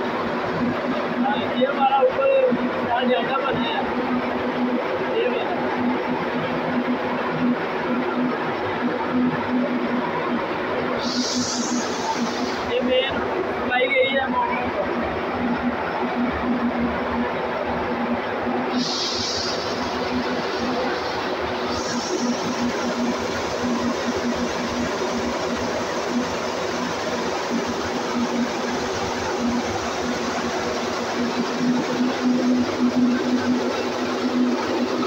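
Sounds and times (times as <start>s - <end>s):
machinery running: 0.0s - 35.0s.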